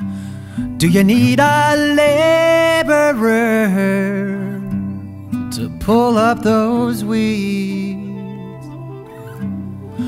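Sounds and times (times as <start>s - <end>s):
acoustic guitar chords: 0.0s - 10.0s
person singing reggae song: 0.8s - 4.8s, 5.5s - 9.1s.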